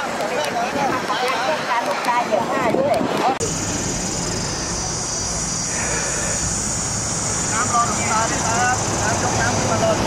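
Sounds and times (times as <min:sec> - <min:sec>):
voices: 0:00.0 - 0:10.0
car engines droning: 0:03.0 - 0:10.0
high-pitched hiss: 0:03.4 - 0:10.0.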